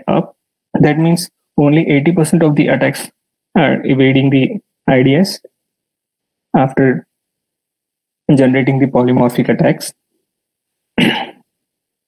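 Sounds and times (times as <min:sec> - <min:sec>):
person clearing throat: 0:11.0 - 0:11.5.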